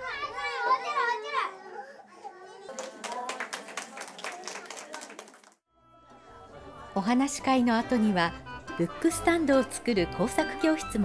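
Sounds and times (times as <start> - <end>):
children calling out: 0.0 - 2.8.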